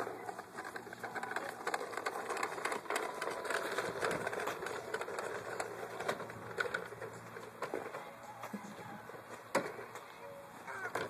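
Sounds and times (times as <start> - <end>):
toy lawn mower rattling on mulch: 0.0 - 11.0.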